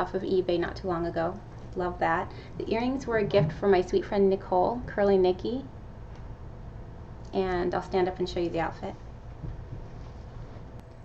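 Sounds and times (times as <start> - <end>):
low room noise rumble: 0.0 - 11.0.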